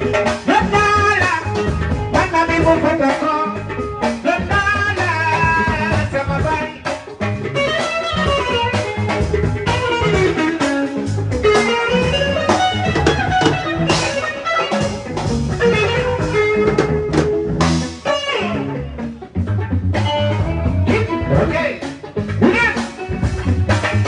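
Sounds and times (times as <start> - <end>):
bass line: 0.0 - 24.0
drum kit: 0.0 - 24.0
electric guitar melody: 0.0 - 24.0.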